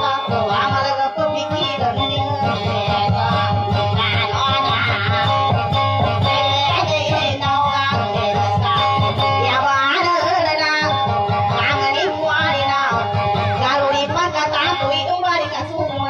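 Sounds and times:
acoustic guitar with steady beat: 0.0 - 10.3, 10.9 - 15.1
person singing: 0.0 - 16.0.

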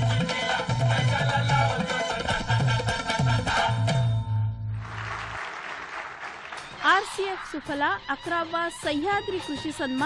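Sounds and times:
audience applause: 4.8 - 7.5.

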